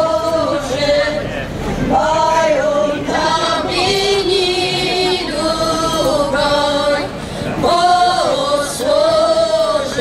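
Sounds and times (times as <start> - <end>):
women's choir singing unaccompanied: 0.0 - 10.0.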